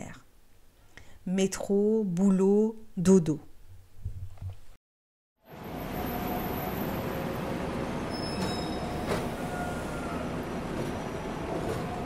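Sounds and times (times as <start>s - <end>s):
metro train rumble: 5.6s - 12.0s.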